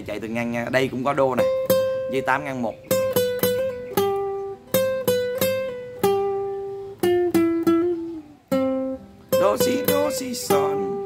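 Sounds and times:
classical guitar melody: 0.0s - 11.0s.

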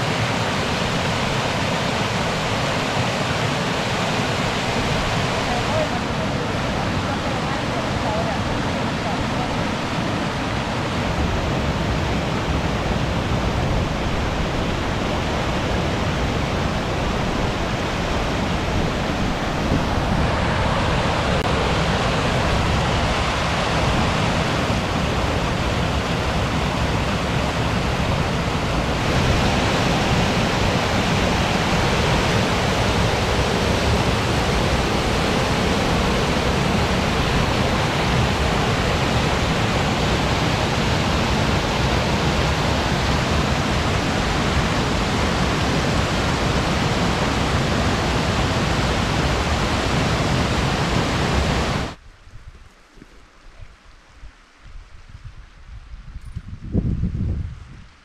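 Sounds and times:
water rushing through gorge: 0.0s - 52.0s.

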